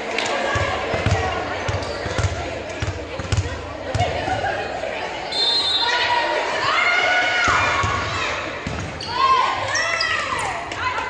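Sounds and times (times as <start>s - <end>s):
girls calling out and cheering: 3.7s - 11.0s.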